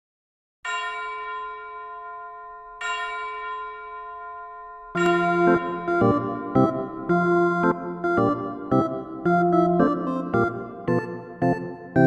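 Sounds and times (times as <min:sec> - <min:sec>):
bell-like chime ringing: 0:00.6 - 0:08.2.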